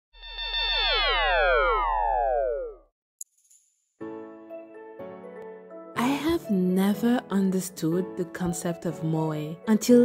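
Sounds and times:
synthesized falling chirps: 0.2 - 2.9.

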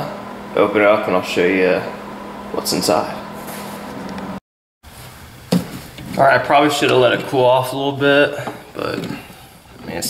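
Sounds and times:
space heater fan hum: 0.0 - 10.0.

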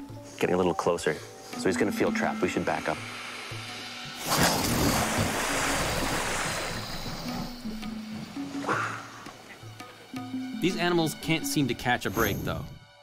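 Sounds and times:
rushing churning water: 2.3 - 10.1
big splash: 4.2 - 7.7.

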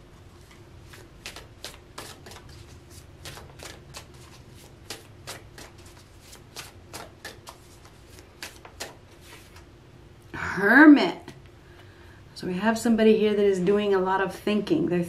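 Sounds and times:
cards being shuffled: 0.4 - 9.7.

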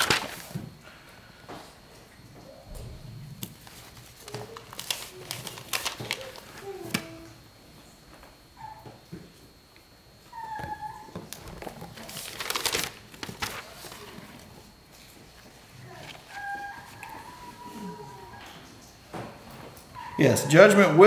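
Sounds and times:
pages rustling: 0.0 - 0.6, 3.4 - 7.2, 11.2 - 17.7.

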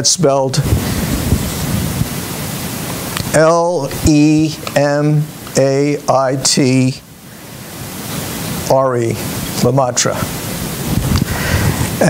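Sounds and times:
man speaking: 0.0 - 0.7, 3.3 - 7.0, 8.7 - 10.3
background hiss: 0.0 - 12.0.

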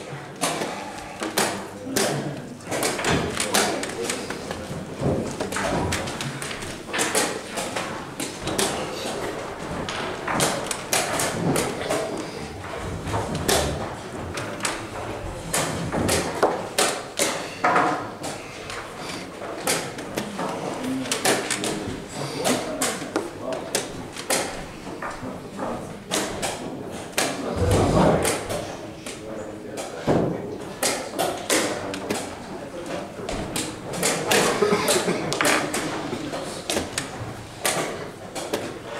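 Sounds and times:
chess pieces knocking on board: 2.7 - 25.2.

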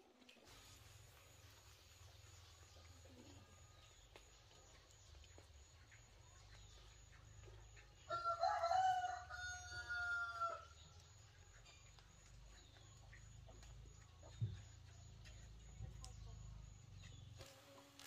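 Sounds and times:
rooster crowing: 8.0 - 10.8.

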